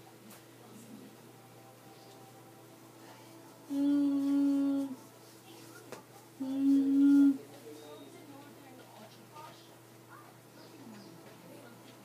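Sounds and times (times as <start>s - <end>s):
person humming a steady note: 3.6s - 5.0s, 6.4s - 7.4s.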